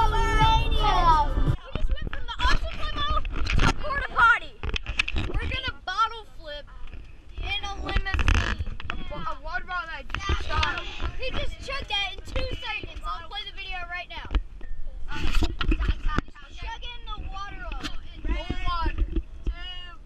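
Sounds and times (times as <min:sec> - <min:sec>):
low vehicle rumble: 0:00.0 - 0:01.6
children talking and calling out: 0:00.0 - 0:20.0.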